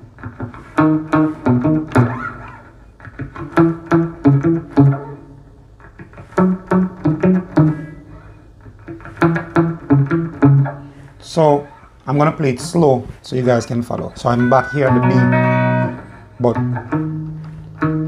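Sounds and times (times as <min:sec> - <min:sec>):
clean electric guitar notes: 0:14.3 - 0:18.0
bass line: 0:14.4 - 0:17.0.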